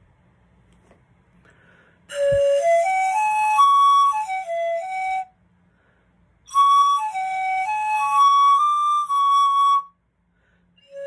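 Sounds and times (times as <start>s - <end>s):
pan flute playing: 2.1s - 5.4s, 6.4s - 10.0s.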